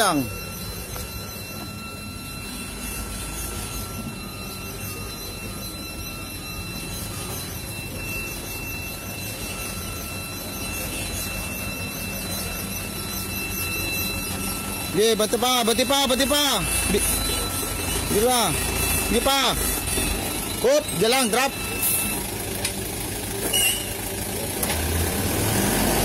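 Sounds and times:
dump truck diesel engine reversing: 0.0 - 26.0.

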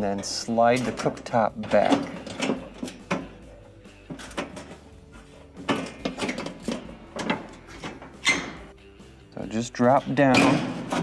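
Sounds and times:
faint background music: 0.0 - 11.0.

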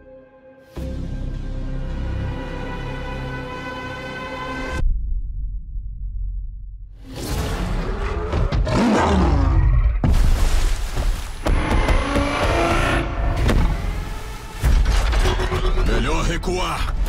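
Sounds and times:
dramatic music with rumbling bass: 0.0 - 8.8, 11.4 - 17.0.

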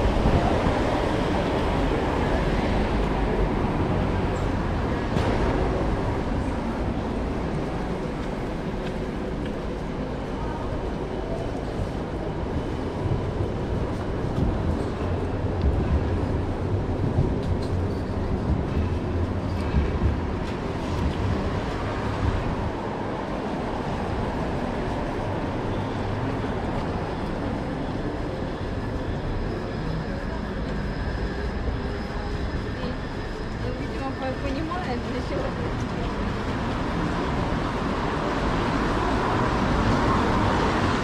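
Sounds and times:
low traffic rumble: 0.0 - 41.0
street noise: 0.0 - 41.0.

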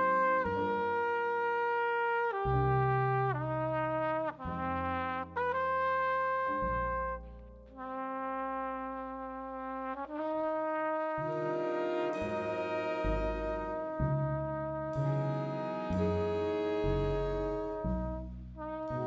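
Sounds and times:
jazz big band playing: 0.0 - 19.0
trumpet solo: 0.0 - 19.0.

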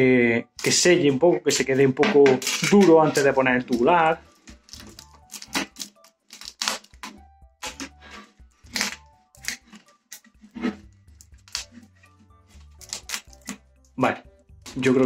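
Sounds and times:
tape ripping off roll: 2.2 - 3.4, 4.4 - 10.8.

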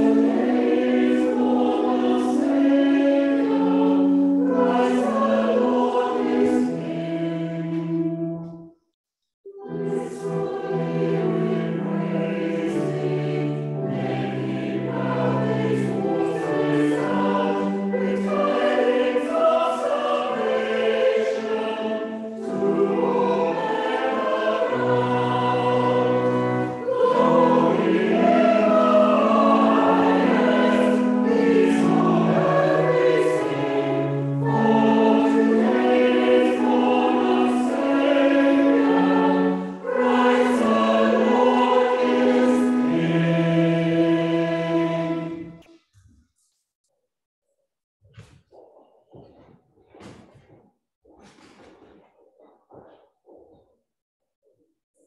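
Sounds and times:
church choir singing: 0.0 - 8.7, 9.5 - 45.8.

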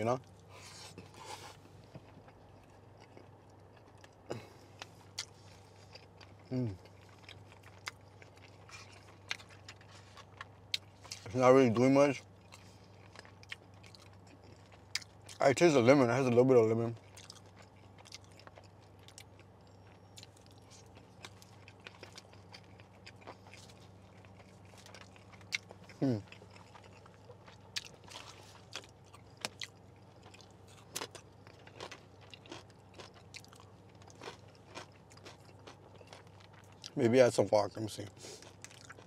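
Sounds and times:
person chewing food: 0.2 - 11.3, 12.2 - 15.4, 17.0 - 37.0, 38.1 - 39.0
food crunching: 0.2 - 39.0
person humming hmm: 6.5 - 6.8, 26.0 - 26.3.

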